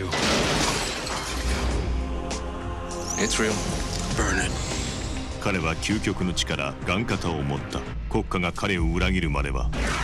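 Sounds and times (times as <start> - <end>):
glass shattering: 0.0 - 1.7
trailer music: 0.8 - 10.0.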